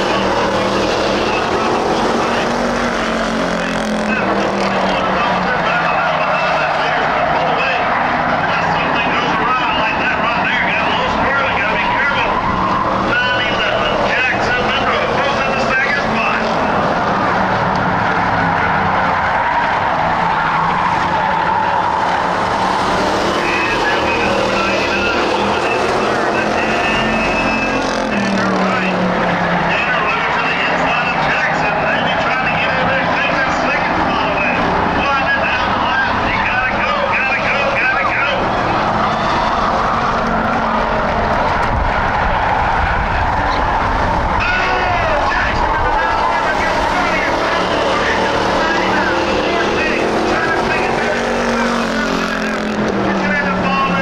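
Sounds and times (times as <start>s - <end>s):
race car engines droning: 0.0s - 54.0s
race car passing close: 0.0s - 54.0s.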